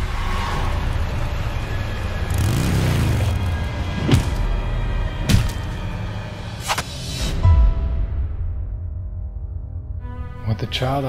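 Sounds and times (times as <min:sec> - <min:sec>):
vehicle engine revving: 0:02.1 - 0:04.4.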